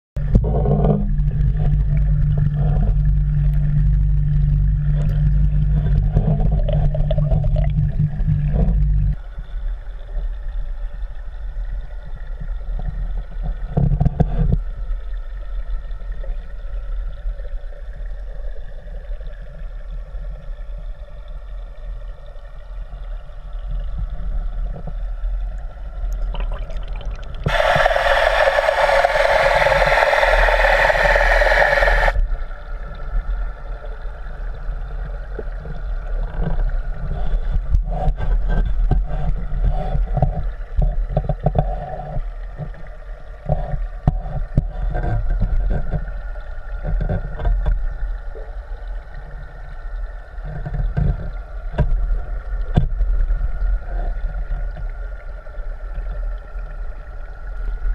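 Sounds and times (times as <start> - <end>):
dull low rumble: 0.2 - 57.9
muffled underwater hum: 0.2 - 57.9
loud hiss: 27.5 - 32.2.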